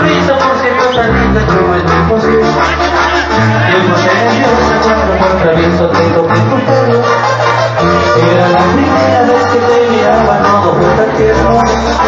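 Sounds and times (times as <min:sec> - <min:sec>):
live band playing amplified music: 0:00.0 - 0:12.0.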